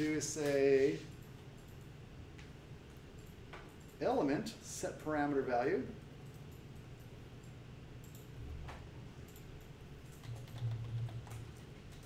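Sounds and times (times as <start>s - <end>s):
keyboard typing: 9.3s - 12.0s.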